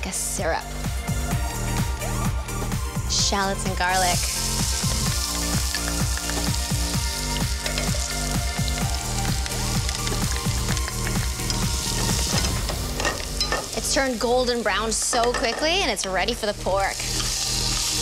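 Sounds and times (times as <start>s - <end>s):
food sizzling in a pan: 3.2s - 18.0s.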